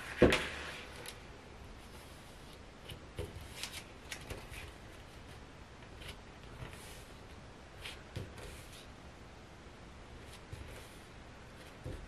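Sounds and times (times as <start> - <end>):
paper rustling: 0.0 - 1.2, 1.9 - 5.0.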